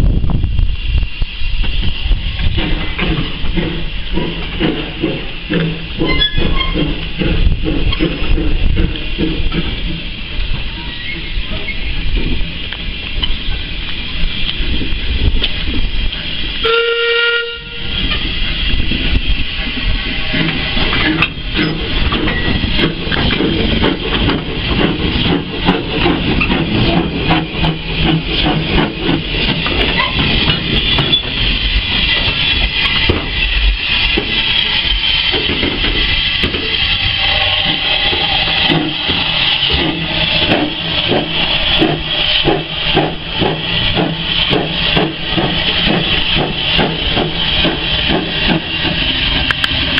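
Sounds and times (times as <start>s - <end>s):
hiss of steam: 0.0s - 49.9s
steam locomotive exhaust beats: 0.0s - 49.9s
steam locomotive whistle: 16.6s - 18.0s, 36.4s - 41.1s.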